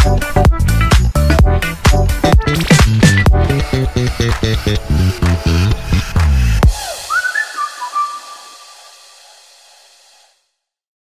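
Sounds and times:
background music: 0.0s - 9.6s
whistled phrase: 6.7s - 9.1s.

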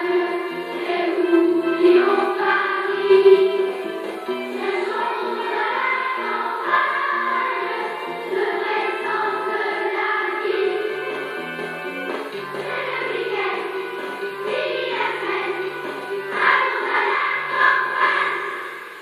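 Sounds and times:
children's choir singing: 0.0s - 19.0s
instrumental accompaniment: 0.0s - 19.0s.

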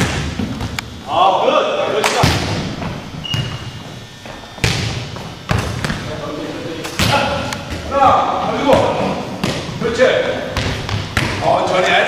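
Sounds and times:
ball thuds on gym floor: 4.2s - 6.0s, 10.5s - 11.5s.

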